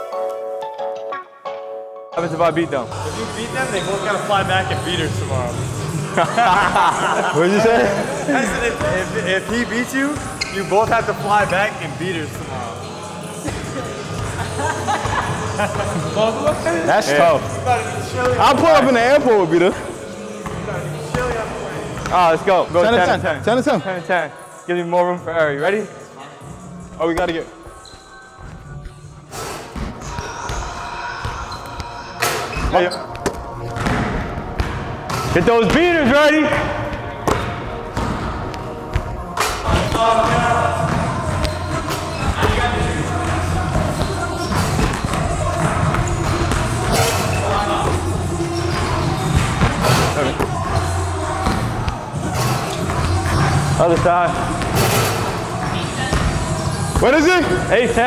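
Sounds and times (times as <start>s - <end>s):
basketballs bouncing on wooden floor: 36.5s - 47.0s, 47.7s - 54.9s, 55.6s - 57.7s
basketballs bouncing on hardwood floor: 39.8s - 46.9s, 55.6s - 57.0s.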